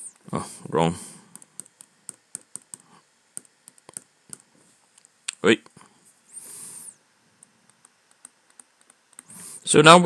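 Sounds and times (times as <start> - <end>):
computer mouse and keyboard clicks: 1.3 - 5.2, 7.4 - 9.4.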